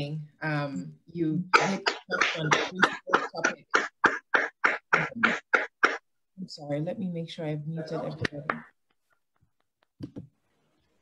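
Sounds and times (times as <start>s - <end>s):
woman coughing: 1.5s - 6.0s.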